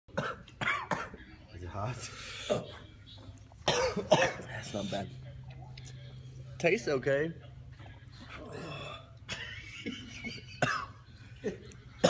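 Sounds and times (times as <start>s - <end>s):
man coughing: 0.1s - 1.2s, 3.6s - 5.0s, 8.5s - 12.0s.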